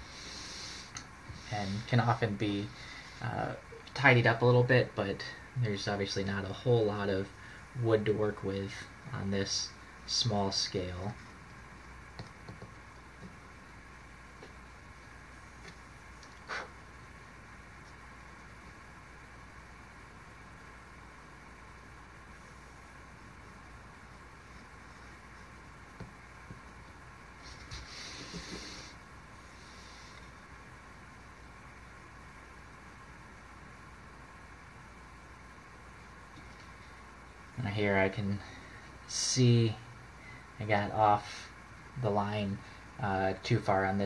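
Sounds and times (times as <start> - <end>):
low room hum: 0.0 - 44.0.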